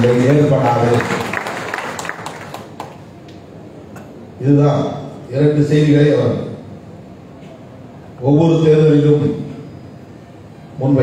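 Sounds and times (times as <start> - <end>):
audience clapping: 0.0 - 3.4.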